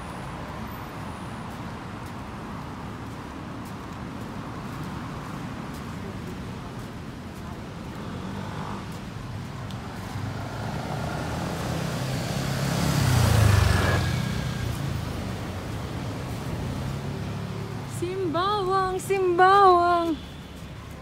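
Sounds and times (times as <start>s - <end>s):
road traffic: 0.0s - 21.0s
vehicle passing close by: 7.5s - 18.0s.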